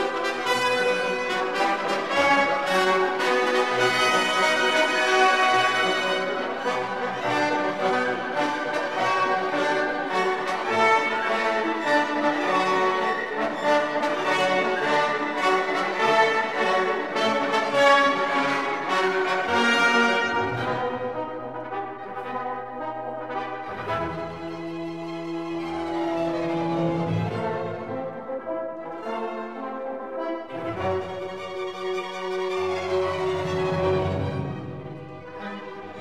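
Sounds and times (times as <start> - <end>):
orchestral music with brass: 0.0 - 36.0.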